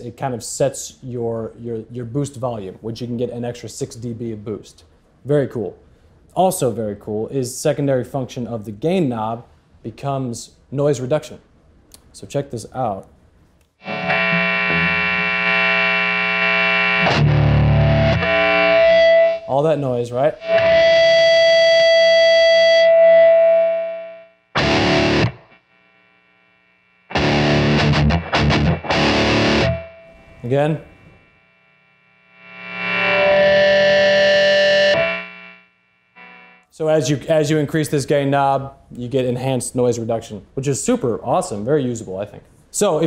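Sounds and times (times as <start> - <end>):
distorted electric guitar: 13.8 - 36.7.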